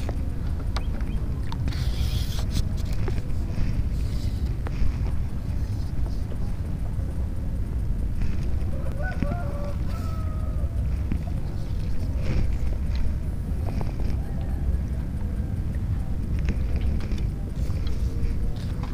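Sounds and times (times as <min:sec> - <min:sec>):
faint clicks: 0:00.0 - 0:18.9
wind buffeting microphone: 0:00.0 - 0:18.9.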